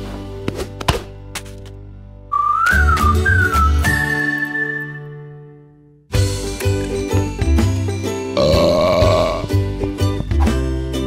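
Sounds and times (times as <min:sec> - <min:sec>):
whistled tune over bouncy beat: 0:02.3 - 0:05.6.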